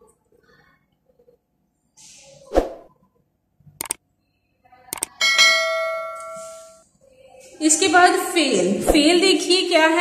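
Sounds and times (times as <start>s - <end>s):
double mouse click: 3.8s - 4.0s
bell notification chime: 5.2s - 6.8s.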